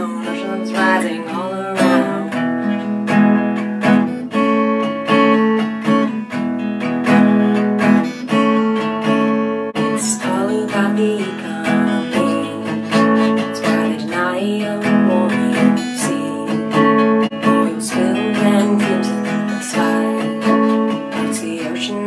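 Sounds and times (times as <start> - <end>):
young woman singing: 0.0 - 3.0, 9.8 - 22.0
acoustic guitar strumming: 0.0 - 22.0.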